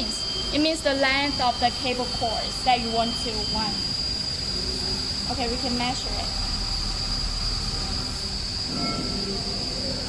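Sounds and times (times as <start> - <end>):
high-pitched electrical whine: 0.0 - 10.0
low machine hum: 0.0 - 10.0.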